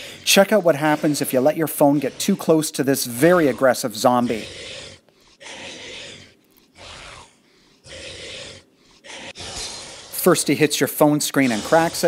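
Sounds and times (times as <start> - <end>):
raspy zombie growls: 0.0 - 12.0.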